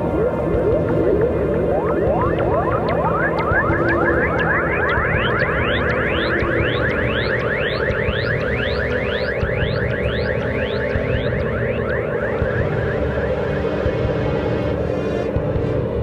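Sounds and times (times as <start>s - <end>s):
rising synth laser sweeps: 0.0s - 15.3s
low synthesizer drone: 0.0s - 16.0s.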